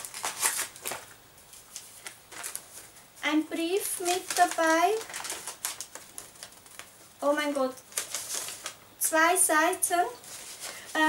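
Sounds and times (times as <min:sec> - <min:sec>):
paper rustling and crackling: 0:00.0 - 0:03.0, 0:03.7 - 0:07.1, 0:07.8 - 0:08.8, 0:10.2 - 0:11.0.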